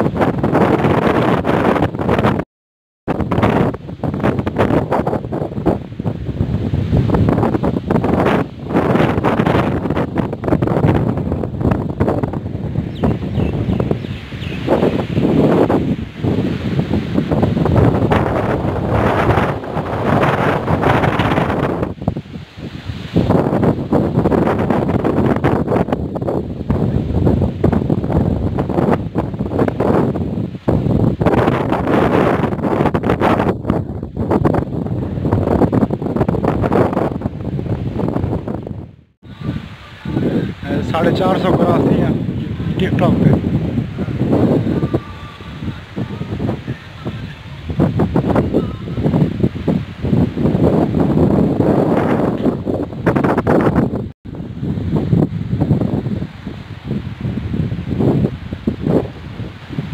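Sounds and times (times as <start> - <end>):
strong wind gusting on microphone: 0.0 - 2.4, 3.1 - 59.9.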